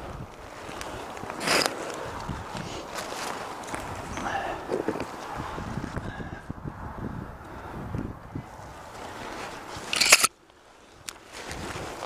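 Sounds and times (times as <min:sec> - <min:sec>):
rustling against conifer branches: 0:00.0 - 0:06.4, 0:08.4 - 0:12.0.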